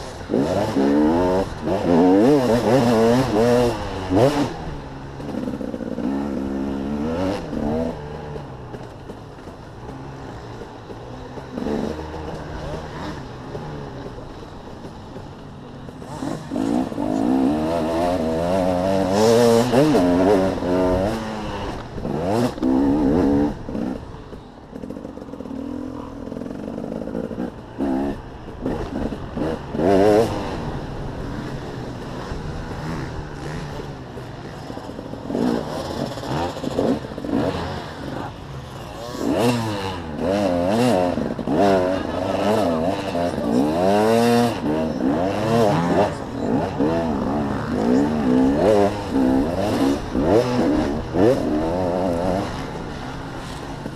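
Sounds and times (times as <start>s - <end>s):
dirt bike engine revving: 0.0s - 53.9s.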